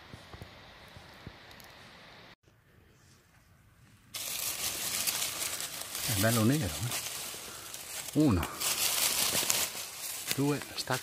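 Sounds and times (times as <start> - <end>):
dry leaves rustling and crackling: 4.1 - 11.0.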